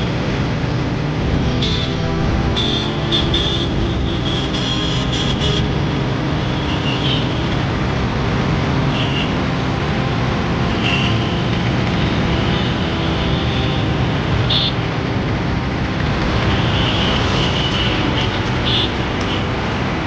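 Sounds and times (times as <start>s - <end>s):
fire engine drone: 0.0s - 20.0s.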